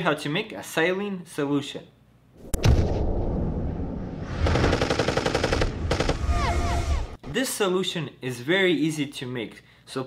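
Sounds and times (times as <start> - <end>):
automatic gunfire: 4.4 - 6.3.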